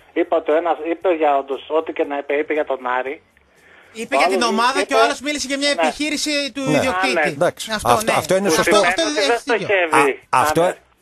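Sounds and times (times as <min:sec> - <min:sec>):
man talking over telephone line: 0:04.0 - 0:10.8.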